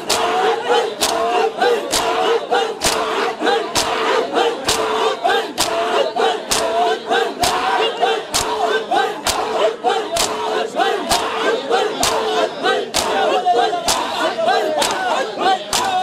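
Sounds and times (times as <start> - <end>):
loud group chanting: 0.0 - 16.0
hands slapping chests: 1.0 - 2.2, 2.8 - 3.1, 3.7 - 4.0, 5.6 - 5.9, 6.5 - 6.8, 8.3 - 8.6, 9.2 - 9.6, 10.2 - 10.4, 12.9 - 13.2, 14.8 - 15.0, 15.7 - 16.0.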